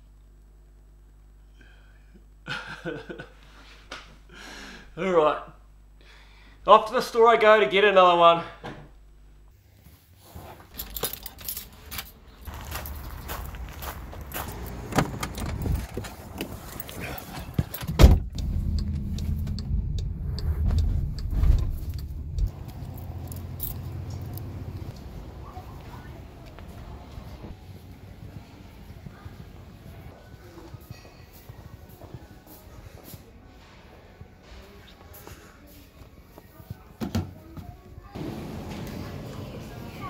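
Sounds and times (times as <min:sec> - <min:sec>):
keys jangling: 0:10.7 - 0:13.1, 0:22.5 - 0:24.8
car engine and road rumble: 0:12.4 - 0:28.2
loud thump: 0:17.9 - 0:18.6, 0:20.4 - 0:22.3.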